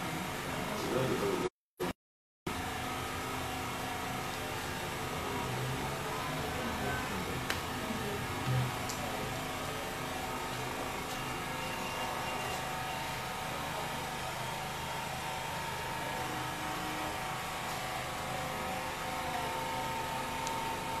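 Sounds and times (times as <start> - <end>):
steady mechanical hum: 0.0 - 1.5, 2.5 - 21.0.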